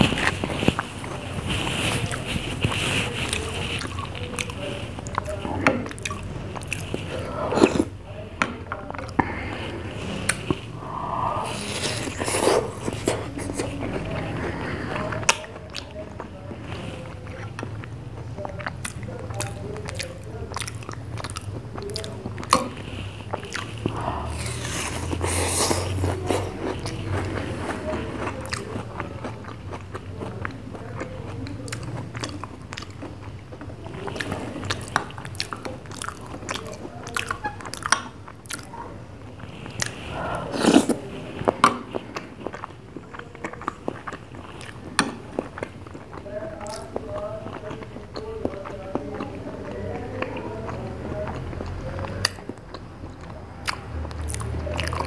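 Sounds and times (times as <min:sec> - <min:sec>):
wet biting and chewing: 0:00.0 - 0:55.0.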